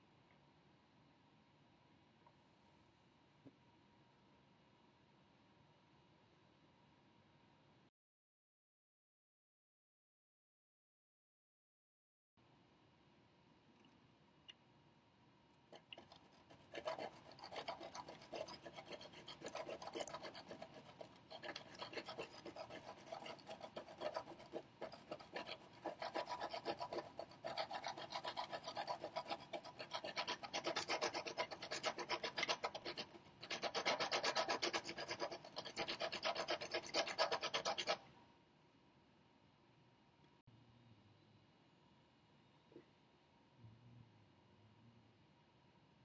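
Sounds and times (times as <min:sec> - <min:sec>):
soldering iron rasping on sandpaper: 0:16.5 - 0:38.0.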